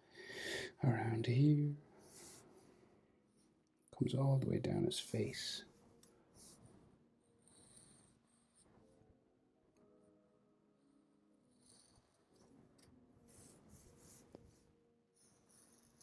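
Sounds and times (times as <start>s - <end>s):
felt-tip marker drawing on paper: 2.0s - 2.7s, 7.4s - 8.8s, 11.5s - 16.0s.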